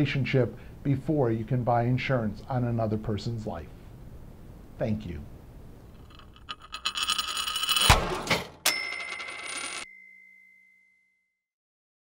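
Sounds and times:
high ringing tone: 8.7s - 11.4s.

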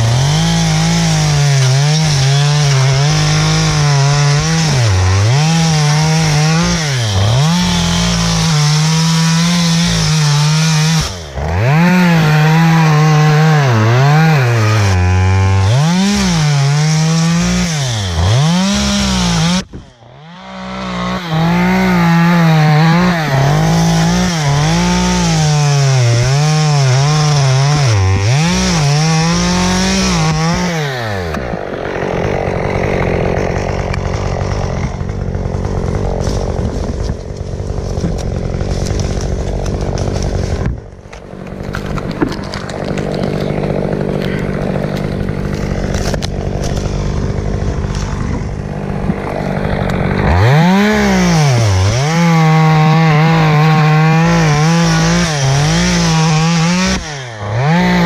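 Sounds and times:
chainsaw revving while cutting: 0.0s - 58.0s.

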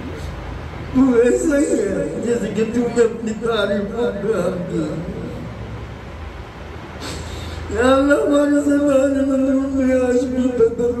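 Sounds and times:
low even hum: 0.0s - 11.0s
steady background hiss: 0.0s - 11.0s.

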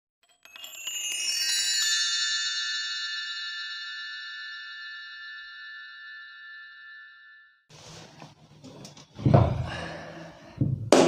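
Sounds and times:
bell-like chime logo music: 0.2s - 7.7s.

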